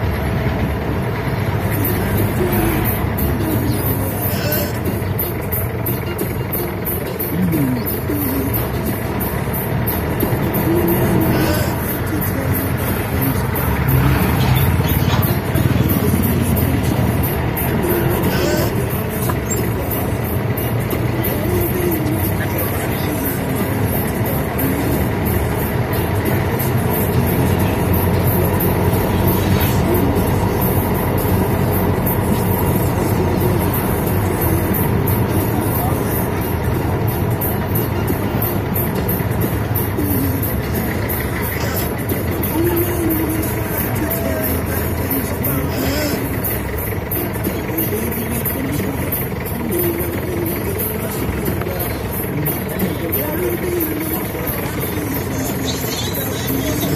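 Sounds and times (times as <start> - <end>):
engine and road noise: 0.0 - 56.9
voices: 0.0 - 56.9
music: 1.4 - 56.9.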